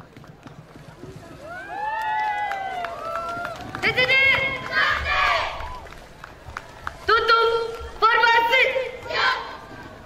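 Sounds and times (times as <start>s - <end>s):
children shouting drawn-out calls: 4.6s - 5.6s.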